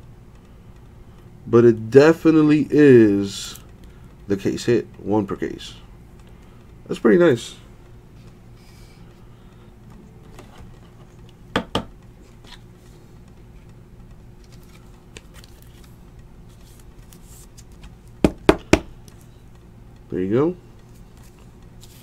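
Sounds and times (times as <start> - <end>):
steady low hum: 0.0 - 22.0
trading cards flipped by hand: 14.4 - 18.2, 20.9 - 22.0.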